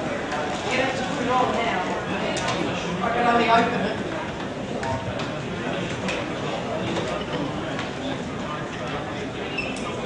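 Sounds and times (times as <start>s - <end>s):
indistinct chatter in echoing hall: 0.0s - 10.0s.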